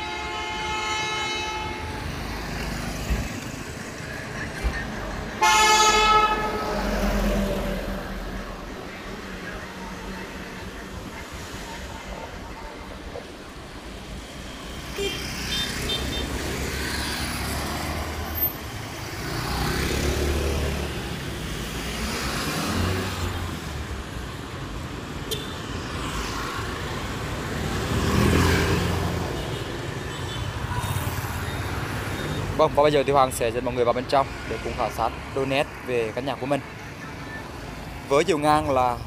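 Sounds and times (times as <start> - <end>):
road traffic passing: 0.0 - 39.0.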